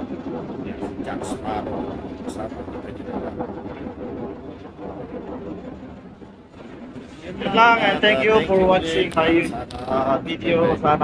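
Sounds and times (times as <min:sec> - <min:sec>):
ship machinery drone: 0:00.0 - 0:11.0
man's voice: 0:00.7 - 0:03.4, 0:07.2 - 0:11.0.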